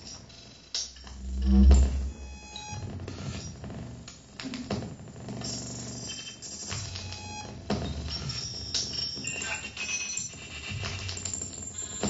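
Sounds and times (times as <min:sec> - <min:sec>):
low hum: 0:01.0 - 0:03.6.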